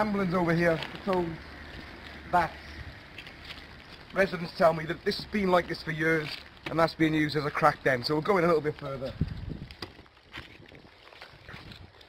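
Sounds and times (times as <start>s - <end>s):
footsteps rustling through dry grass: 0.0s - 12.0s.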